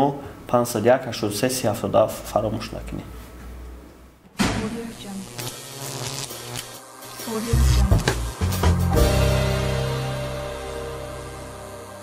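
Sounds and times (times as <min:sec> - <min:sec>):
low buzzing hum: 0:04.7 - 0:12.0.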